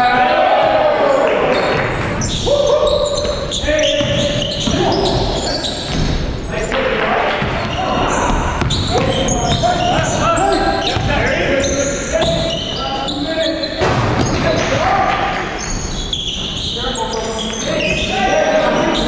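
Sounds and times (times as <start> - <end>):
players calling out: 0.0 - 19.0
sneaker squeaks: 0.2 - 6.8, 7.4 - 14.8, 15.5 - 19.0.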